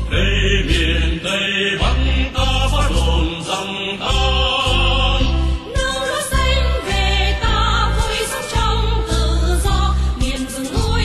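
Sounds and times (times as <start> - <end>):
strong bass beat: 0.0 - 1.2, 1.8 - 3.4, 4.0 - 7.9
chant-like singing: 0.0 - 11.0.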